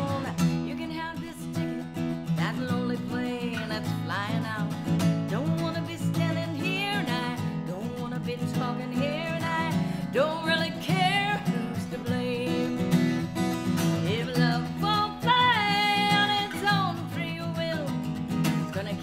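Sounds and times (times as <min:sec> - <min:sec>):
strummed acoustic guitar: 0:00.0 - 0:19.0
woman singing with vibrato: 0:00.0 - 0:19.0.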